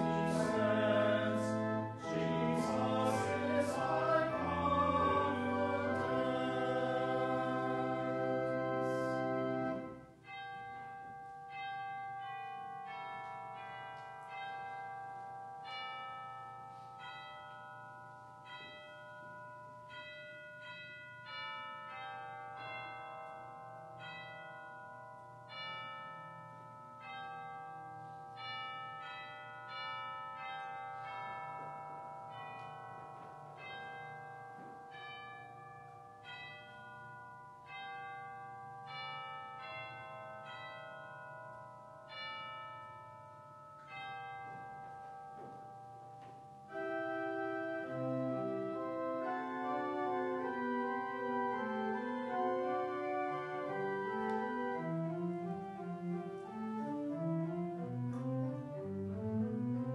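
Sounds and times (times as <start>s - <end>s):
church bells ringing: 0.0s - 59.9s.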